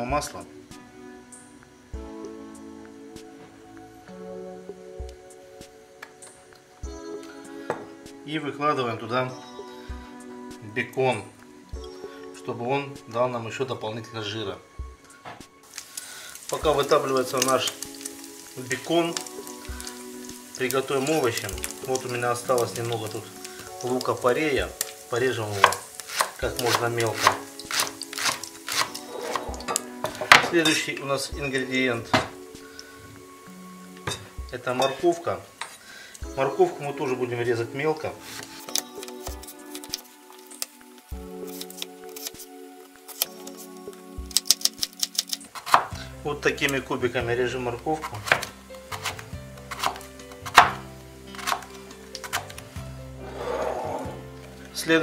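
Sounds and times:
quiet background music: 0:00.0 - 0:55.0
knife chopping on wooden board: 0:25.6 - 0:29.4, 0:45.6 - 0:45.9, 0:48.0 - 0:50.8, 0:51.4 - 0:52.5.

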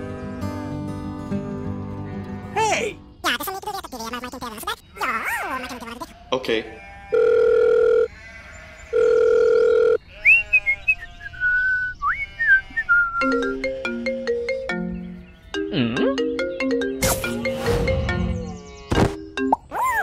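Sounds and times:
long loud beeps: 0:09.0 - 0:10.0
sliding whistled tune: 0:11.2 - 0:13.5
background music: 0:13.2 - 0:19.7.

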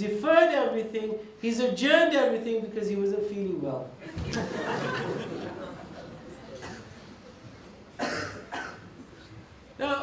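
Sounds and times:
man coughing: 0:08.0 - 0:08.9.

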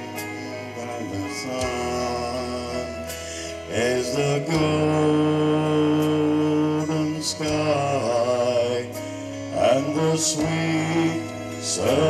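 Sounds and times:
man singing through a pa: 0:00.0 - 0:12.0.

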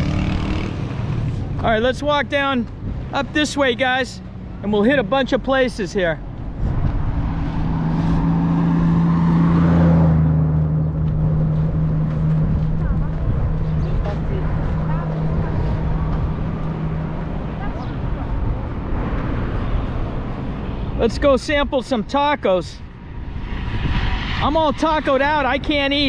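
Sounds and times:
vehicle engine hum and tyre noise: 0:00.0 - 0:26.0.

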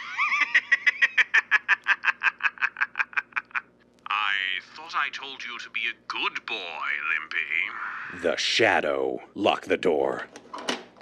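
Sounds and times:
man laughing mockingly: 0:00.0 - 0:03.7.

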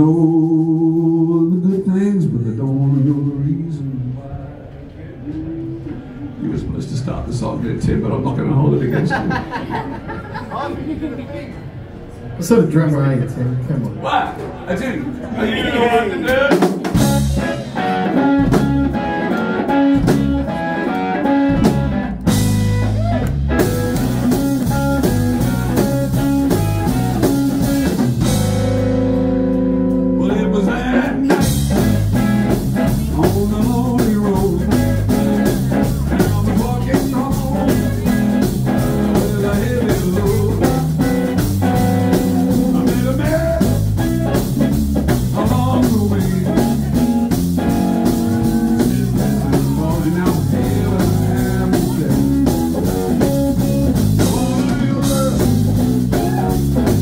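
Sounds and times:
drum kit: 0:16.3 - 0:57.0
electric guitar: 0:16.8 - 0:57.0
electric bass: 0:16.9 - 0:57.0.

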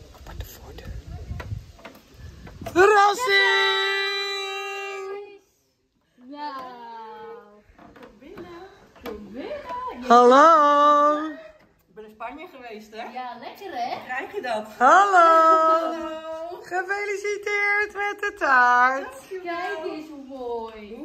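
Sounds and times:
excited greeting voices: 0:02.7 - 0:05.6, 0:09.3 - 0:11.6, 0:13.8 - 0:21.0
loud held cry: 0:02.8 - 0:05.3.

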